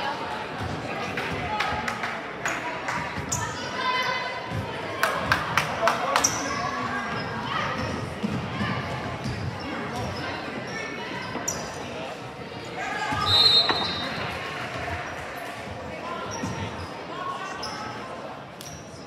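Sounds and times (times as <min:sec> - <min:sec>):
voices echoing in gym: 0:00.0 - 0:19.0
referee whistle: 0:13.2 - 0:14.1.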